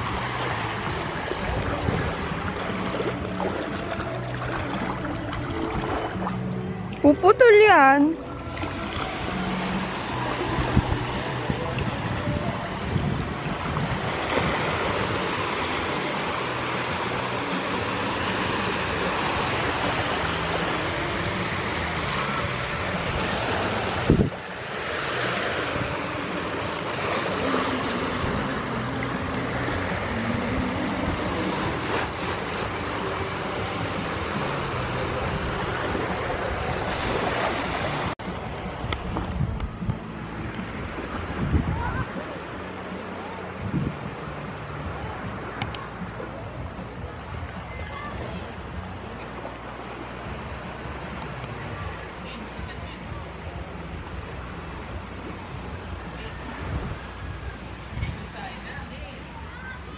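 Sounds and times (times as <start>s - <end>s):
wind buffeting microphone: 0.0s - 7.0s, 10.2s - 15.5s, 21.0s - 24.6s, 37.9s - 42.6s, 43.4s - 45.6s
small waves washing: 0.0s - 59.9s.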